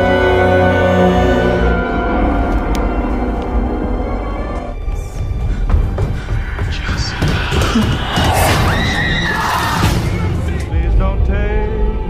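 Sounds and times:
horror film music: 0.0s - 12.0s
high-pitched screech: 6.2s - 10.1s.

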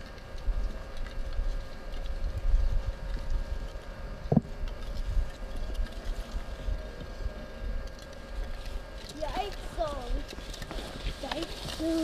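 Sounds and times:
skis and poles clicking on snow: 8.0s - 12.0s.

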